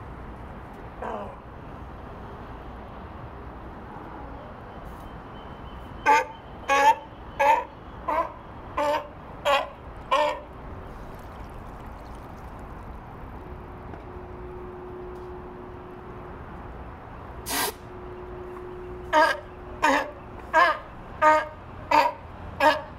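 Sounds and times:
sea lion barking: 6.0s - 10.6s, 19.1s - 22.9s.

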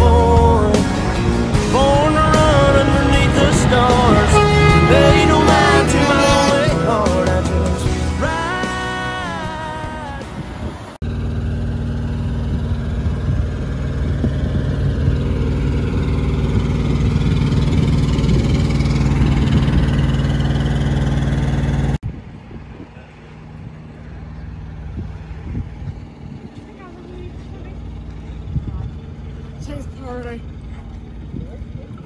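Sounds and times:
diesel truck engine idling: 0.0s - 22.0s, 23.0s - 32.0s.

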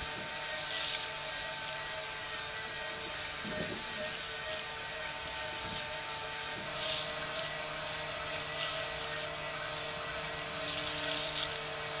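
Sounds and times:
small electric motors whining: 0.0s - 12.0s.

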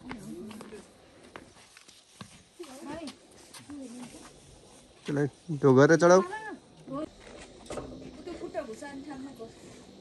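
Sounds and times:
hooves clopping on stone: 0.0s - 5.3s.

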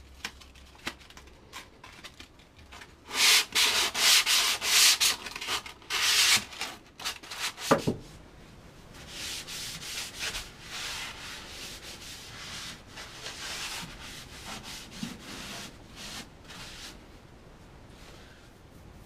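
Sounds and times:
hand sanding wood: 3.1s - 6.6s, 9.0s - 17.0s.

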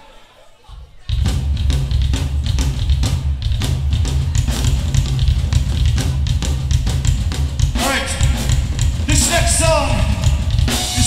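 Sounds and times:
pounding drums: 0.9s - 11.0s
heavy bass: 1.0s - 11.0s
punk band playing live: 1.1s - 11.0s
singer shouting into microphone: 7.8s - 11.0s.

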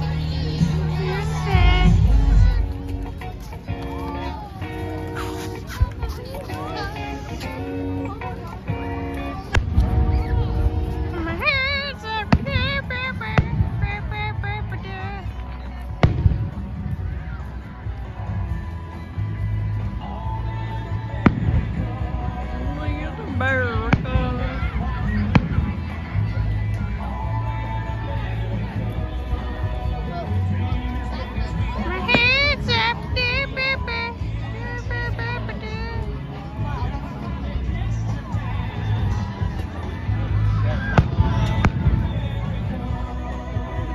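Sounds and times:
steady low rumble: 0.0s - 4.1s, 8.7s - 28.0s, 36.8s - 43.9s.

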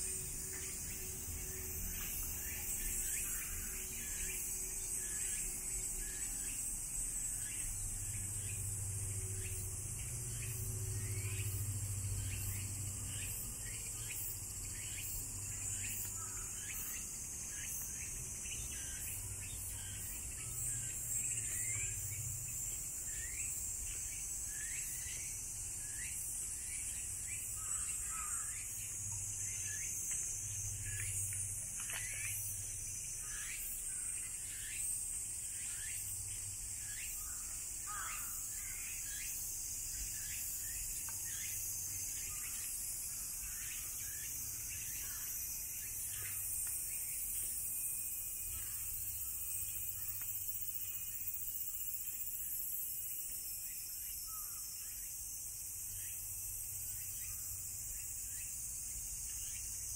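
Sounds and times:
cicada chorus drone: 0.0s - 59.9s.

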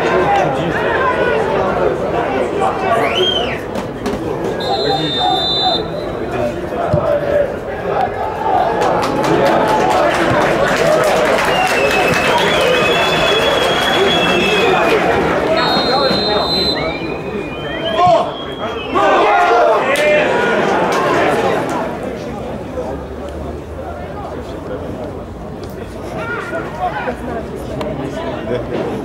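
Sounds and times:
spectators chattering: 0.0s - 29.0s
referee's whistle: 3.0s - 3.7s, 4.6s - 6.2s, 11.4s - 19.2s
players shouting: 4.3s - 22.1s
high-pitched whistle blast: 4.6s - 6.1s, 15.6s - 19.1s.

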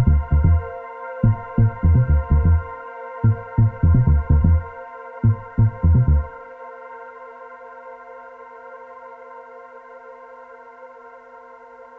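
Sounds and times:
synthesizer chord drone: 0.0s - 6.4s.

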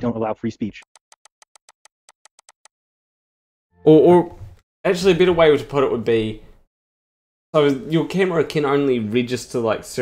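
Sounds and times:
computer mouse or keyboard clicks: 0.8s - 2.7s.

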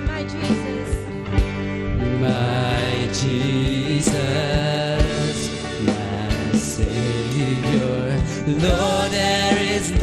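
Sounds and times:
acoustic guitar: 0.0s - 10.0s
bass guitar: 0.0s - 10.0s
voices singing long notes: 2.0s - 10.0s.

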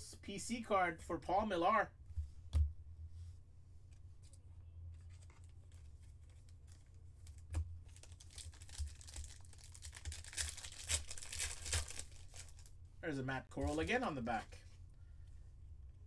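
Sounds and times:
foil wrapper crinkling and tearing: 6.6s - 12.7s.

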